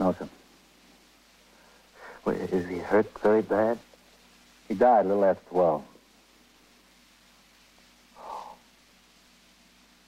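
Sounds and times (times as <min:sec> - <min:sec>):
recording hiss: 0:00.0 - 0:10.0
man's choked breathy vocal sound: 0:08.2 - 0:08.6.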